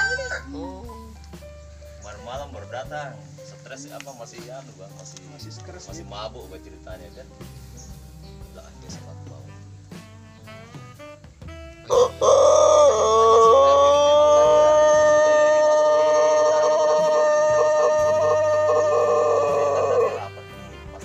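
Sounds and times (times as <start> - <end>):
rooster crowing: 0.0 - 0.6, 11.9 - 20.3.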